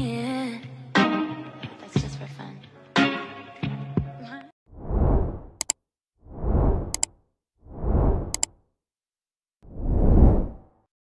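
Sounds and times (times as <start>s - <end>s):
whoosh: 4.7s - 5.6s, 6.2s - 8.5s, 9.6s - 10.8s.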